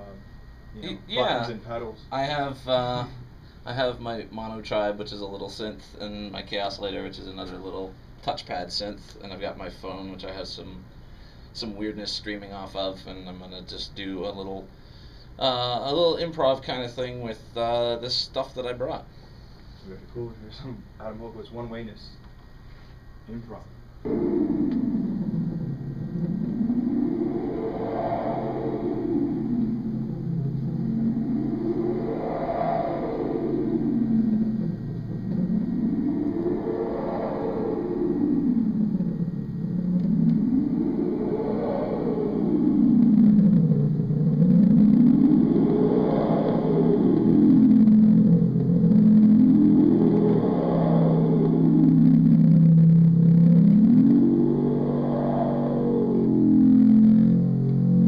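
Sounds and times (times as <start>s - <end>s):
steady low tone: 0.0s - 22.3s, 23.0s - 58.0s
synthesizer drone sweeping pitch: 23.3s - 58.0s.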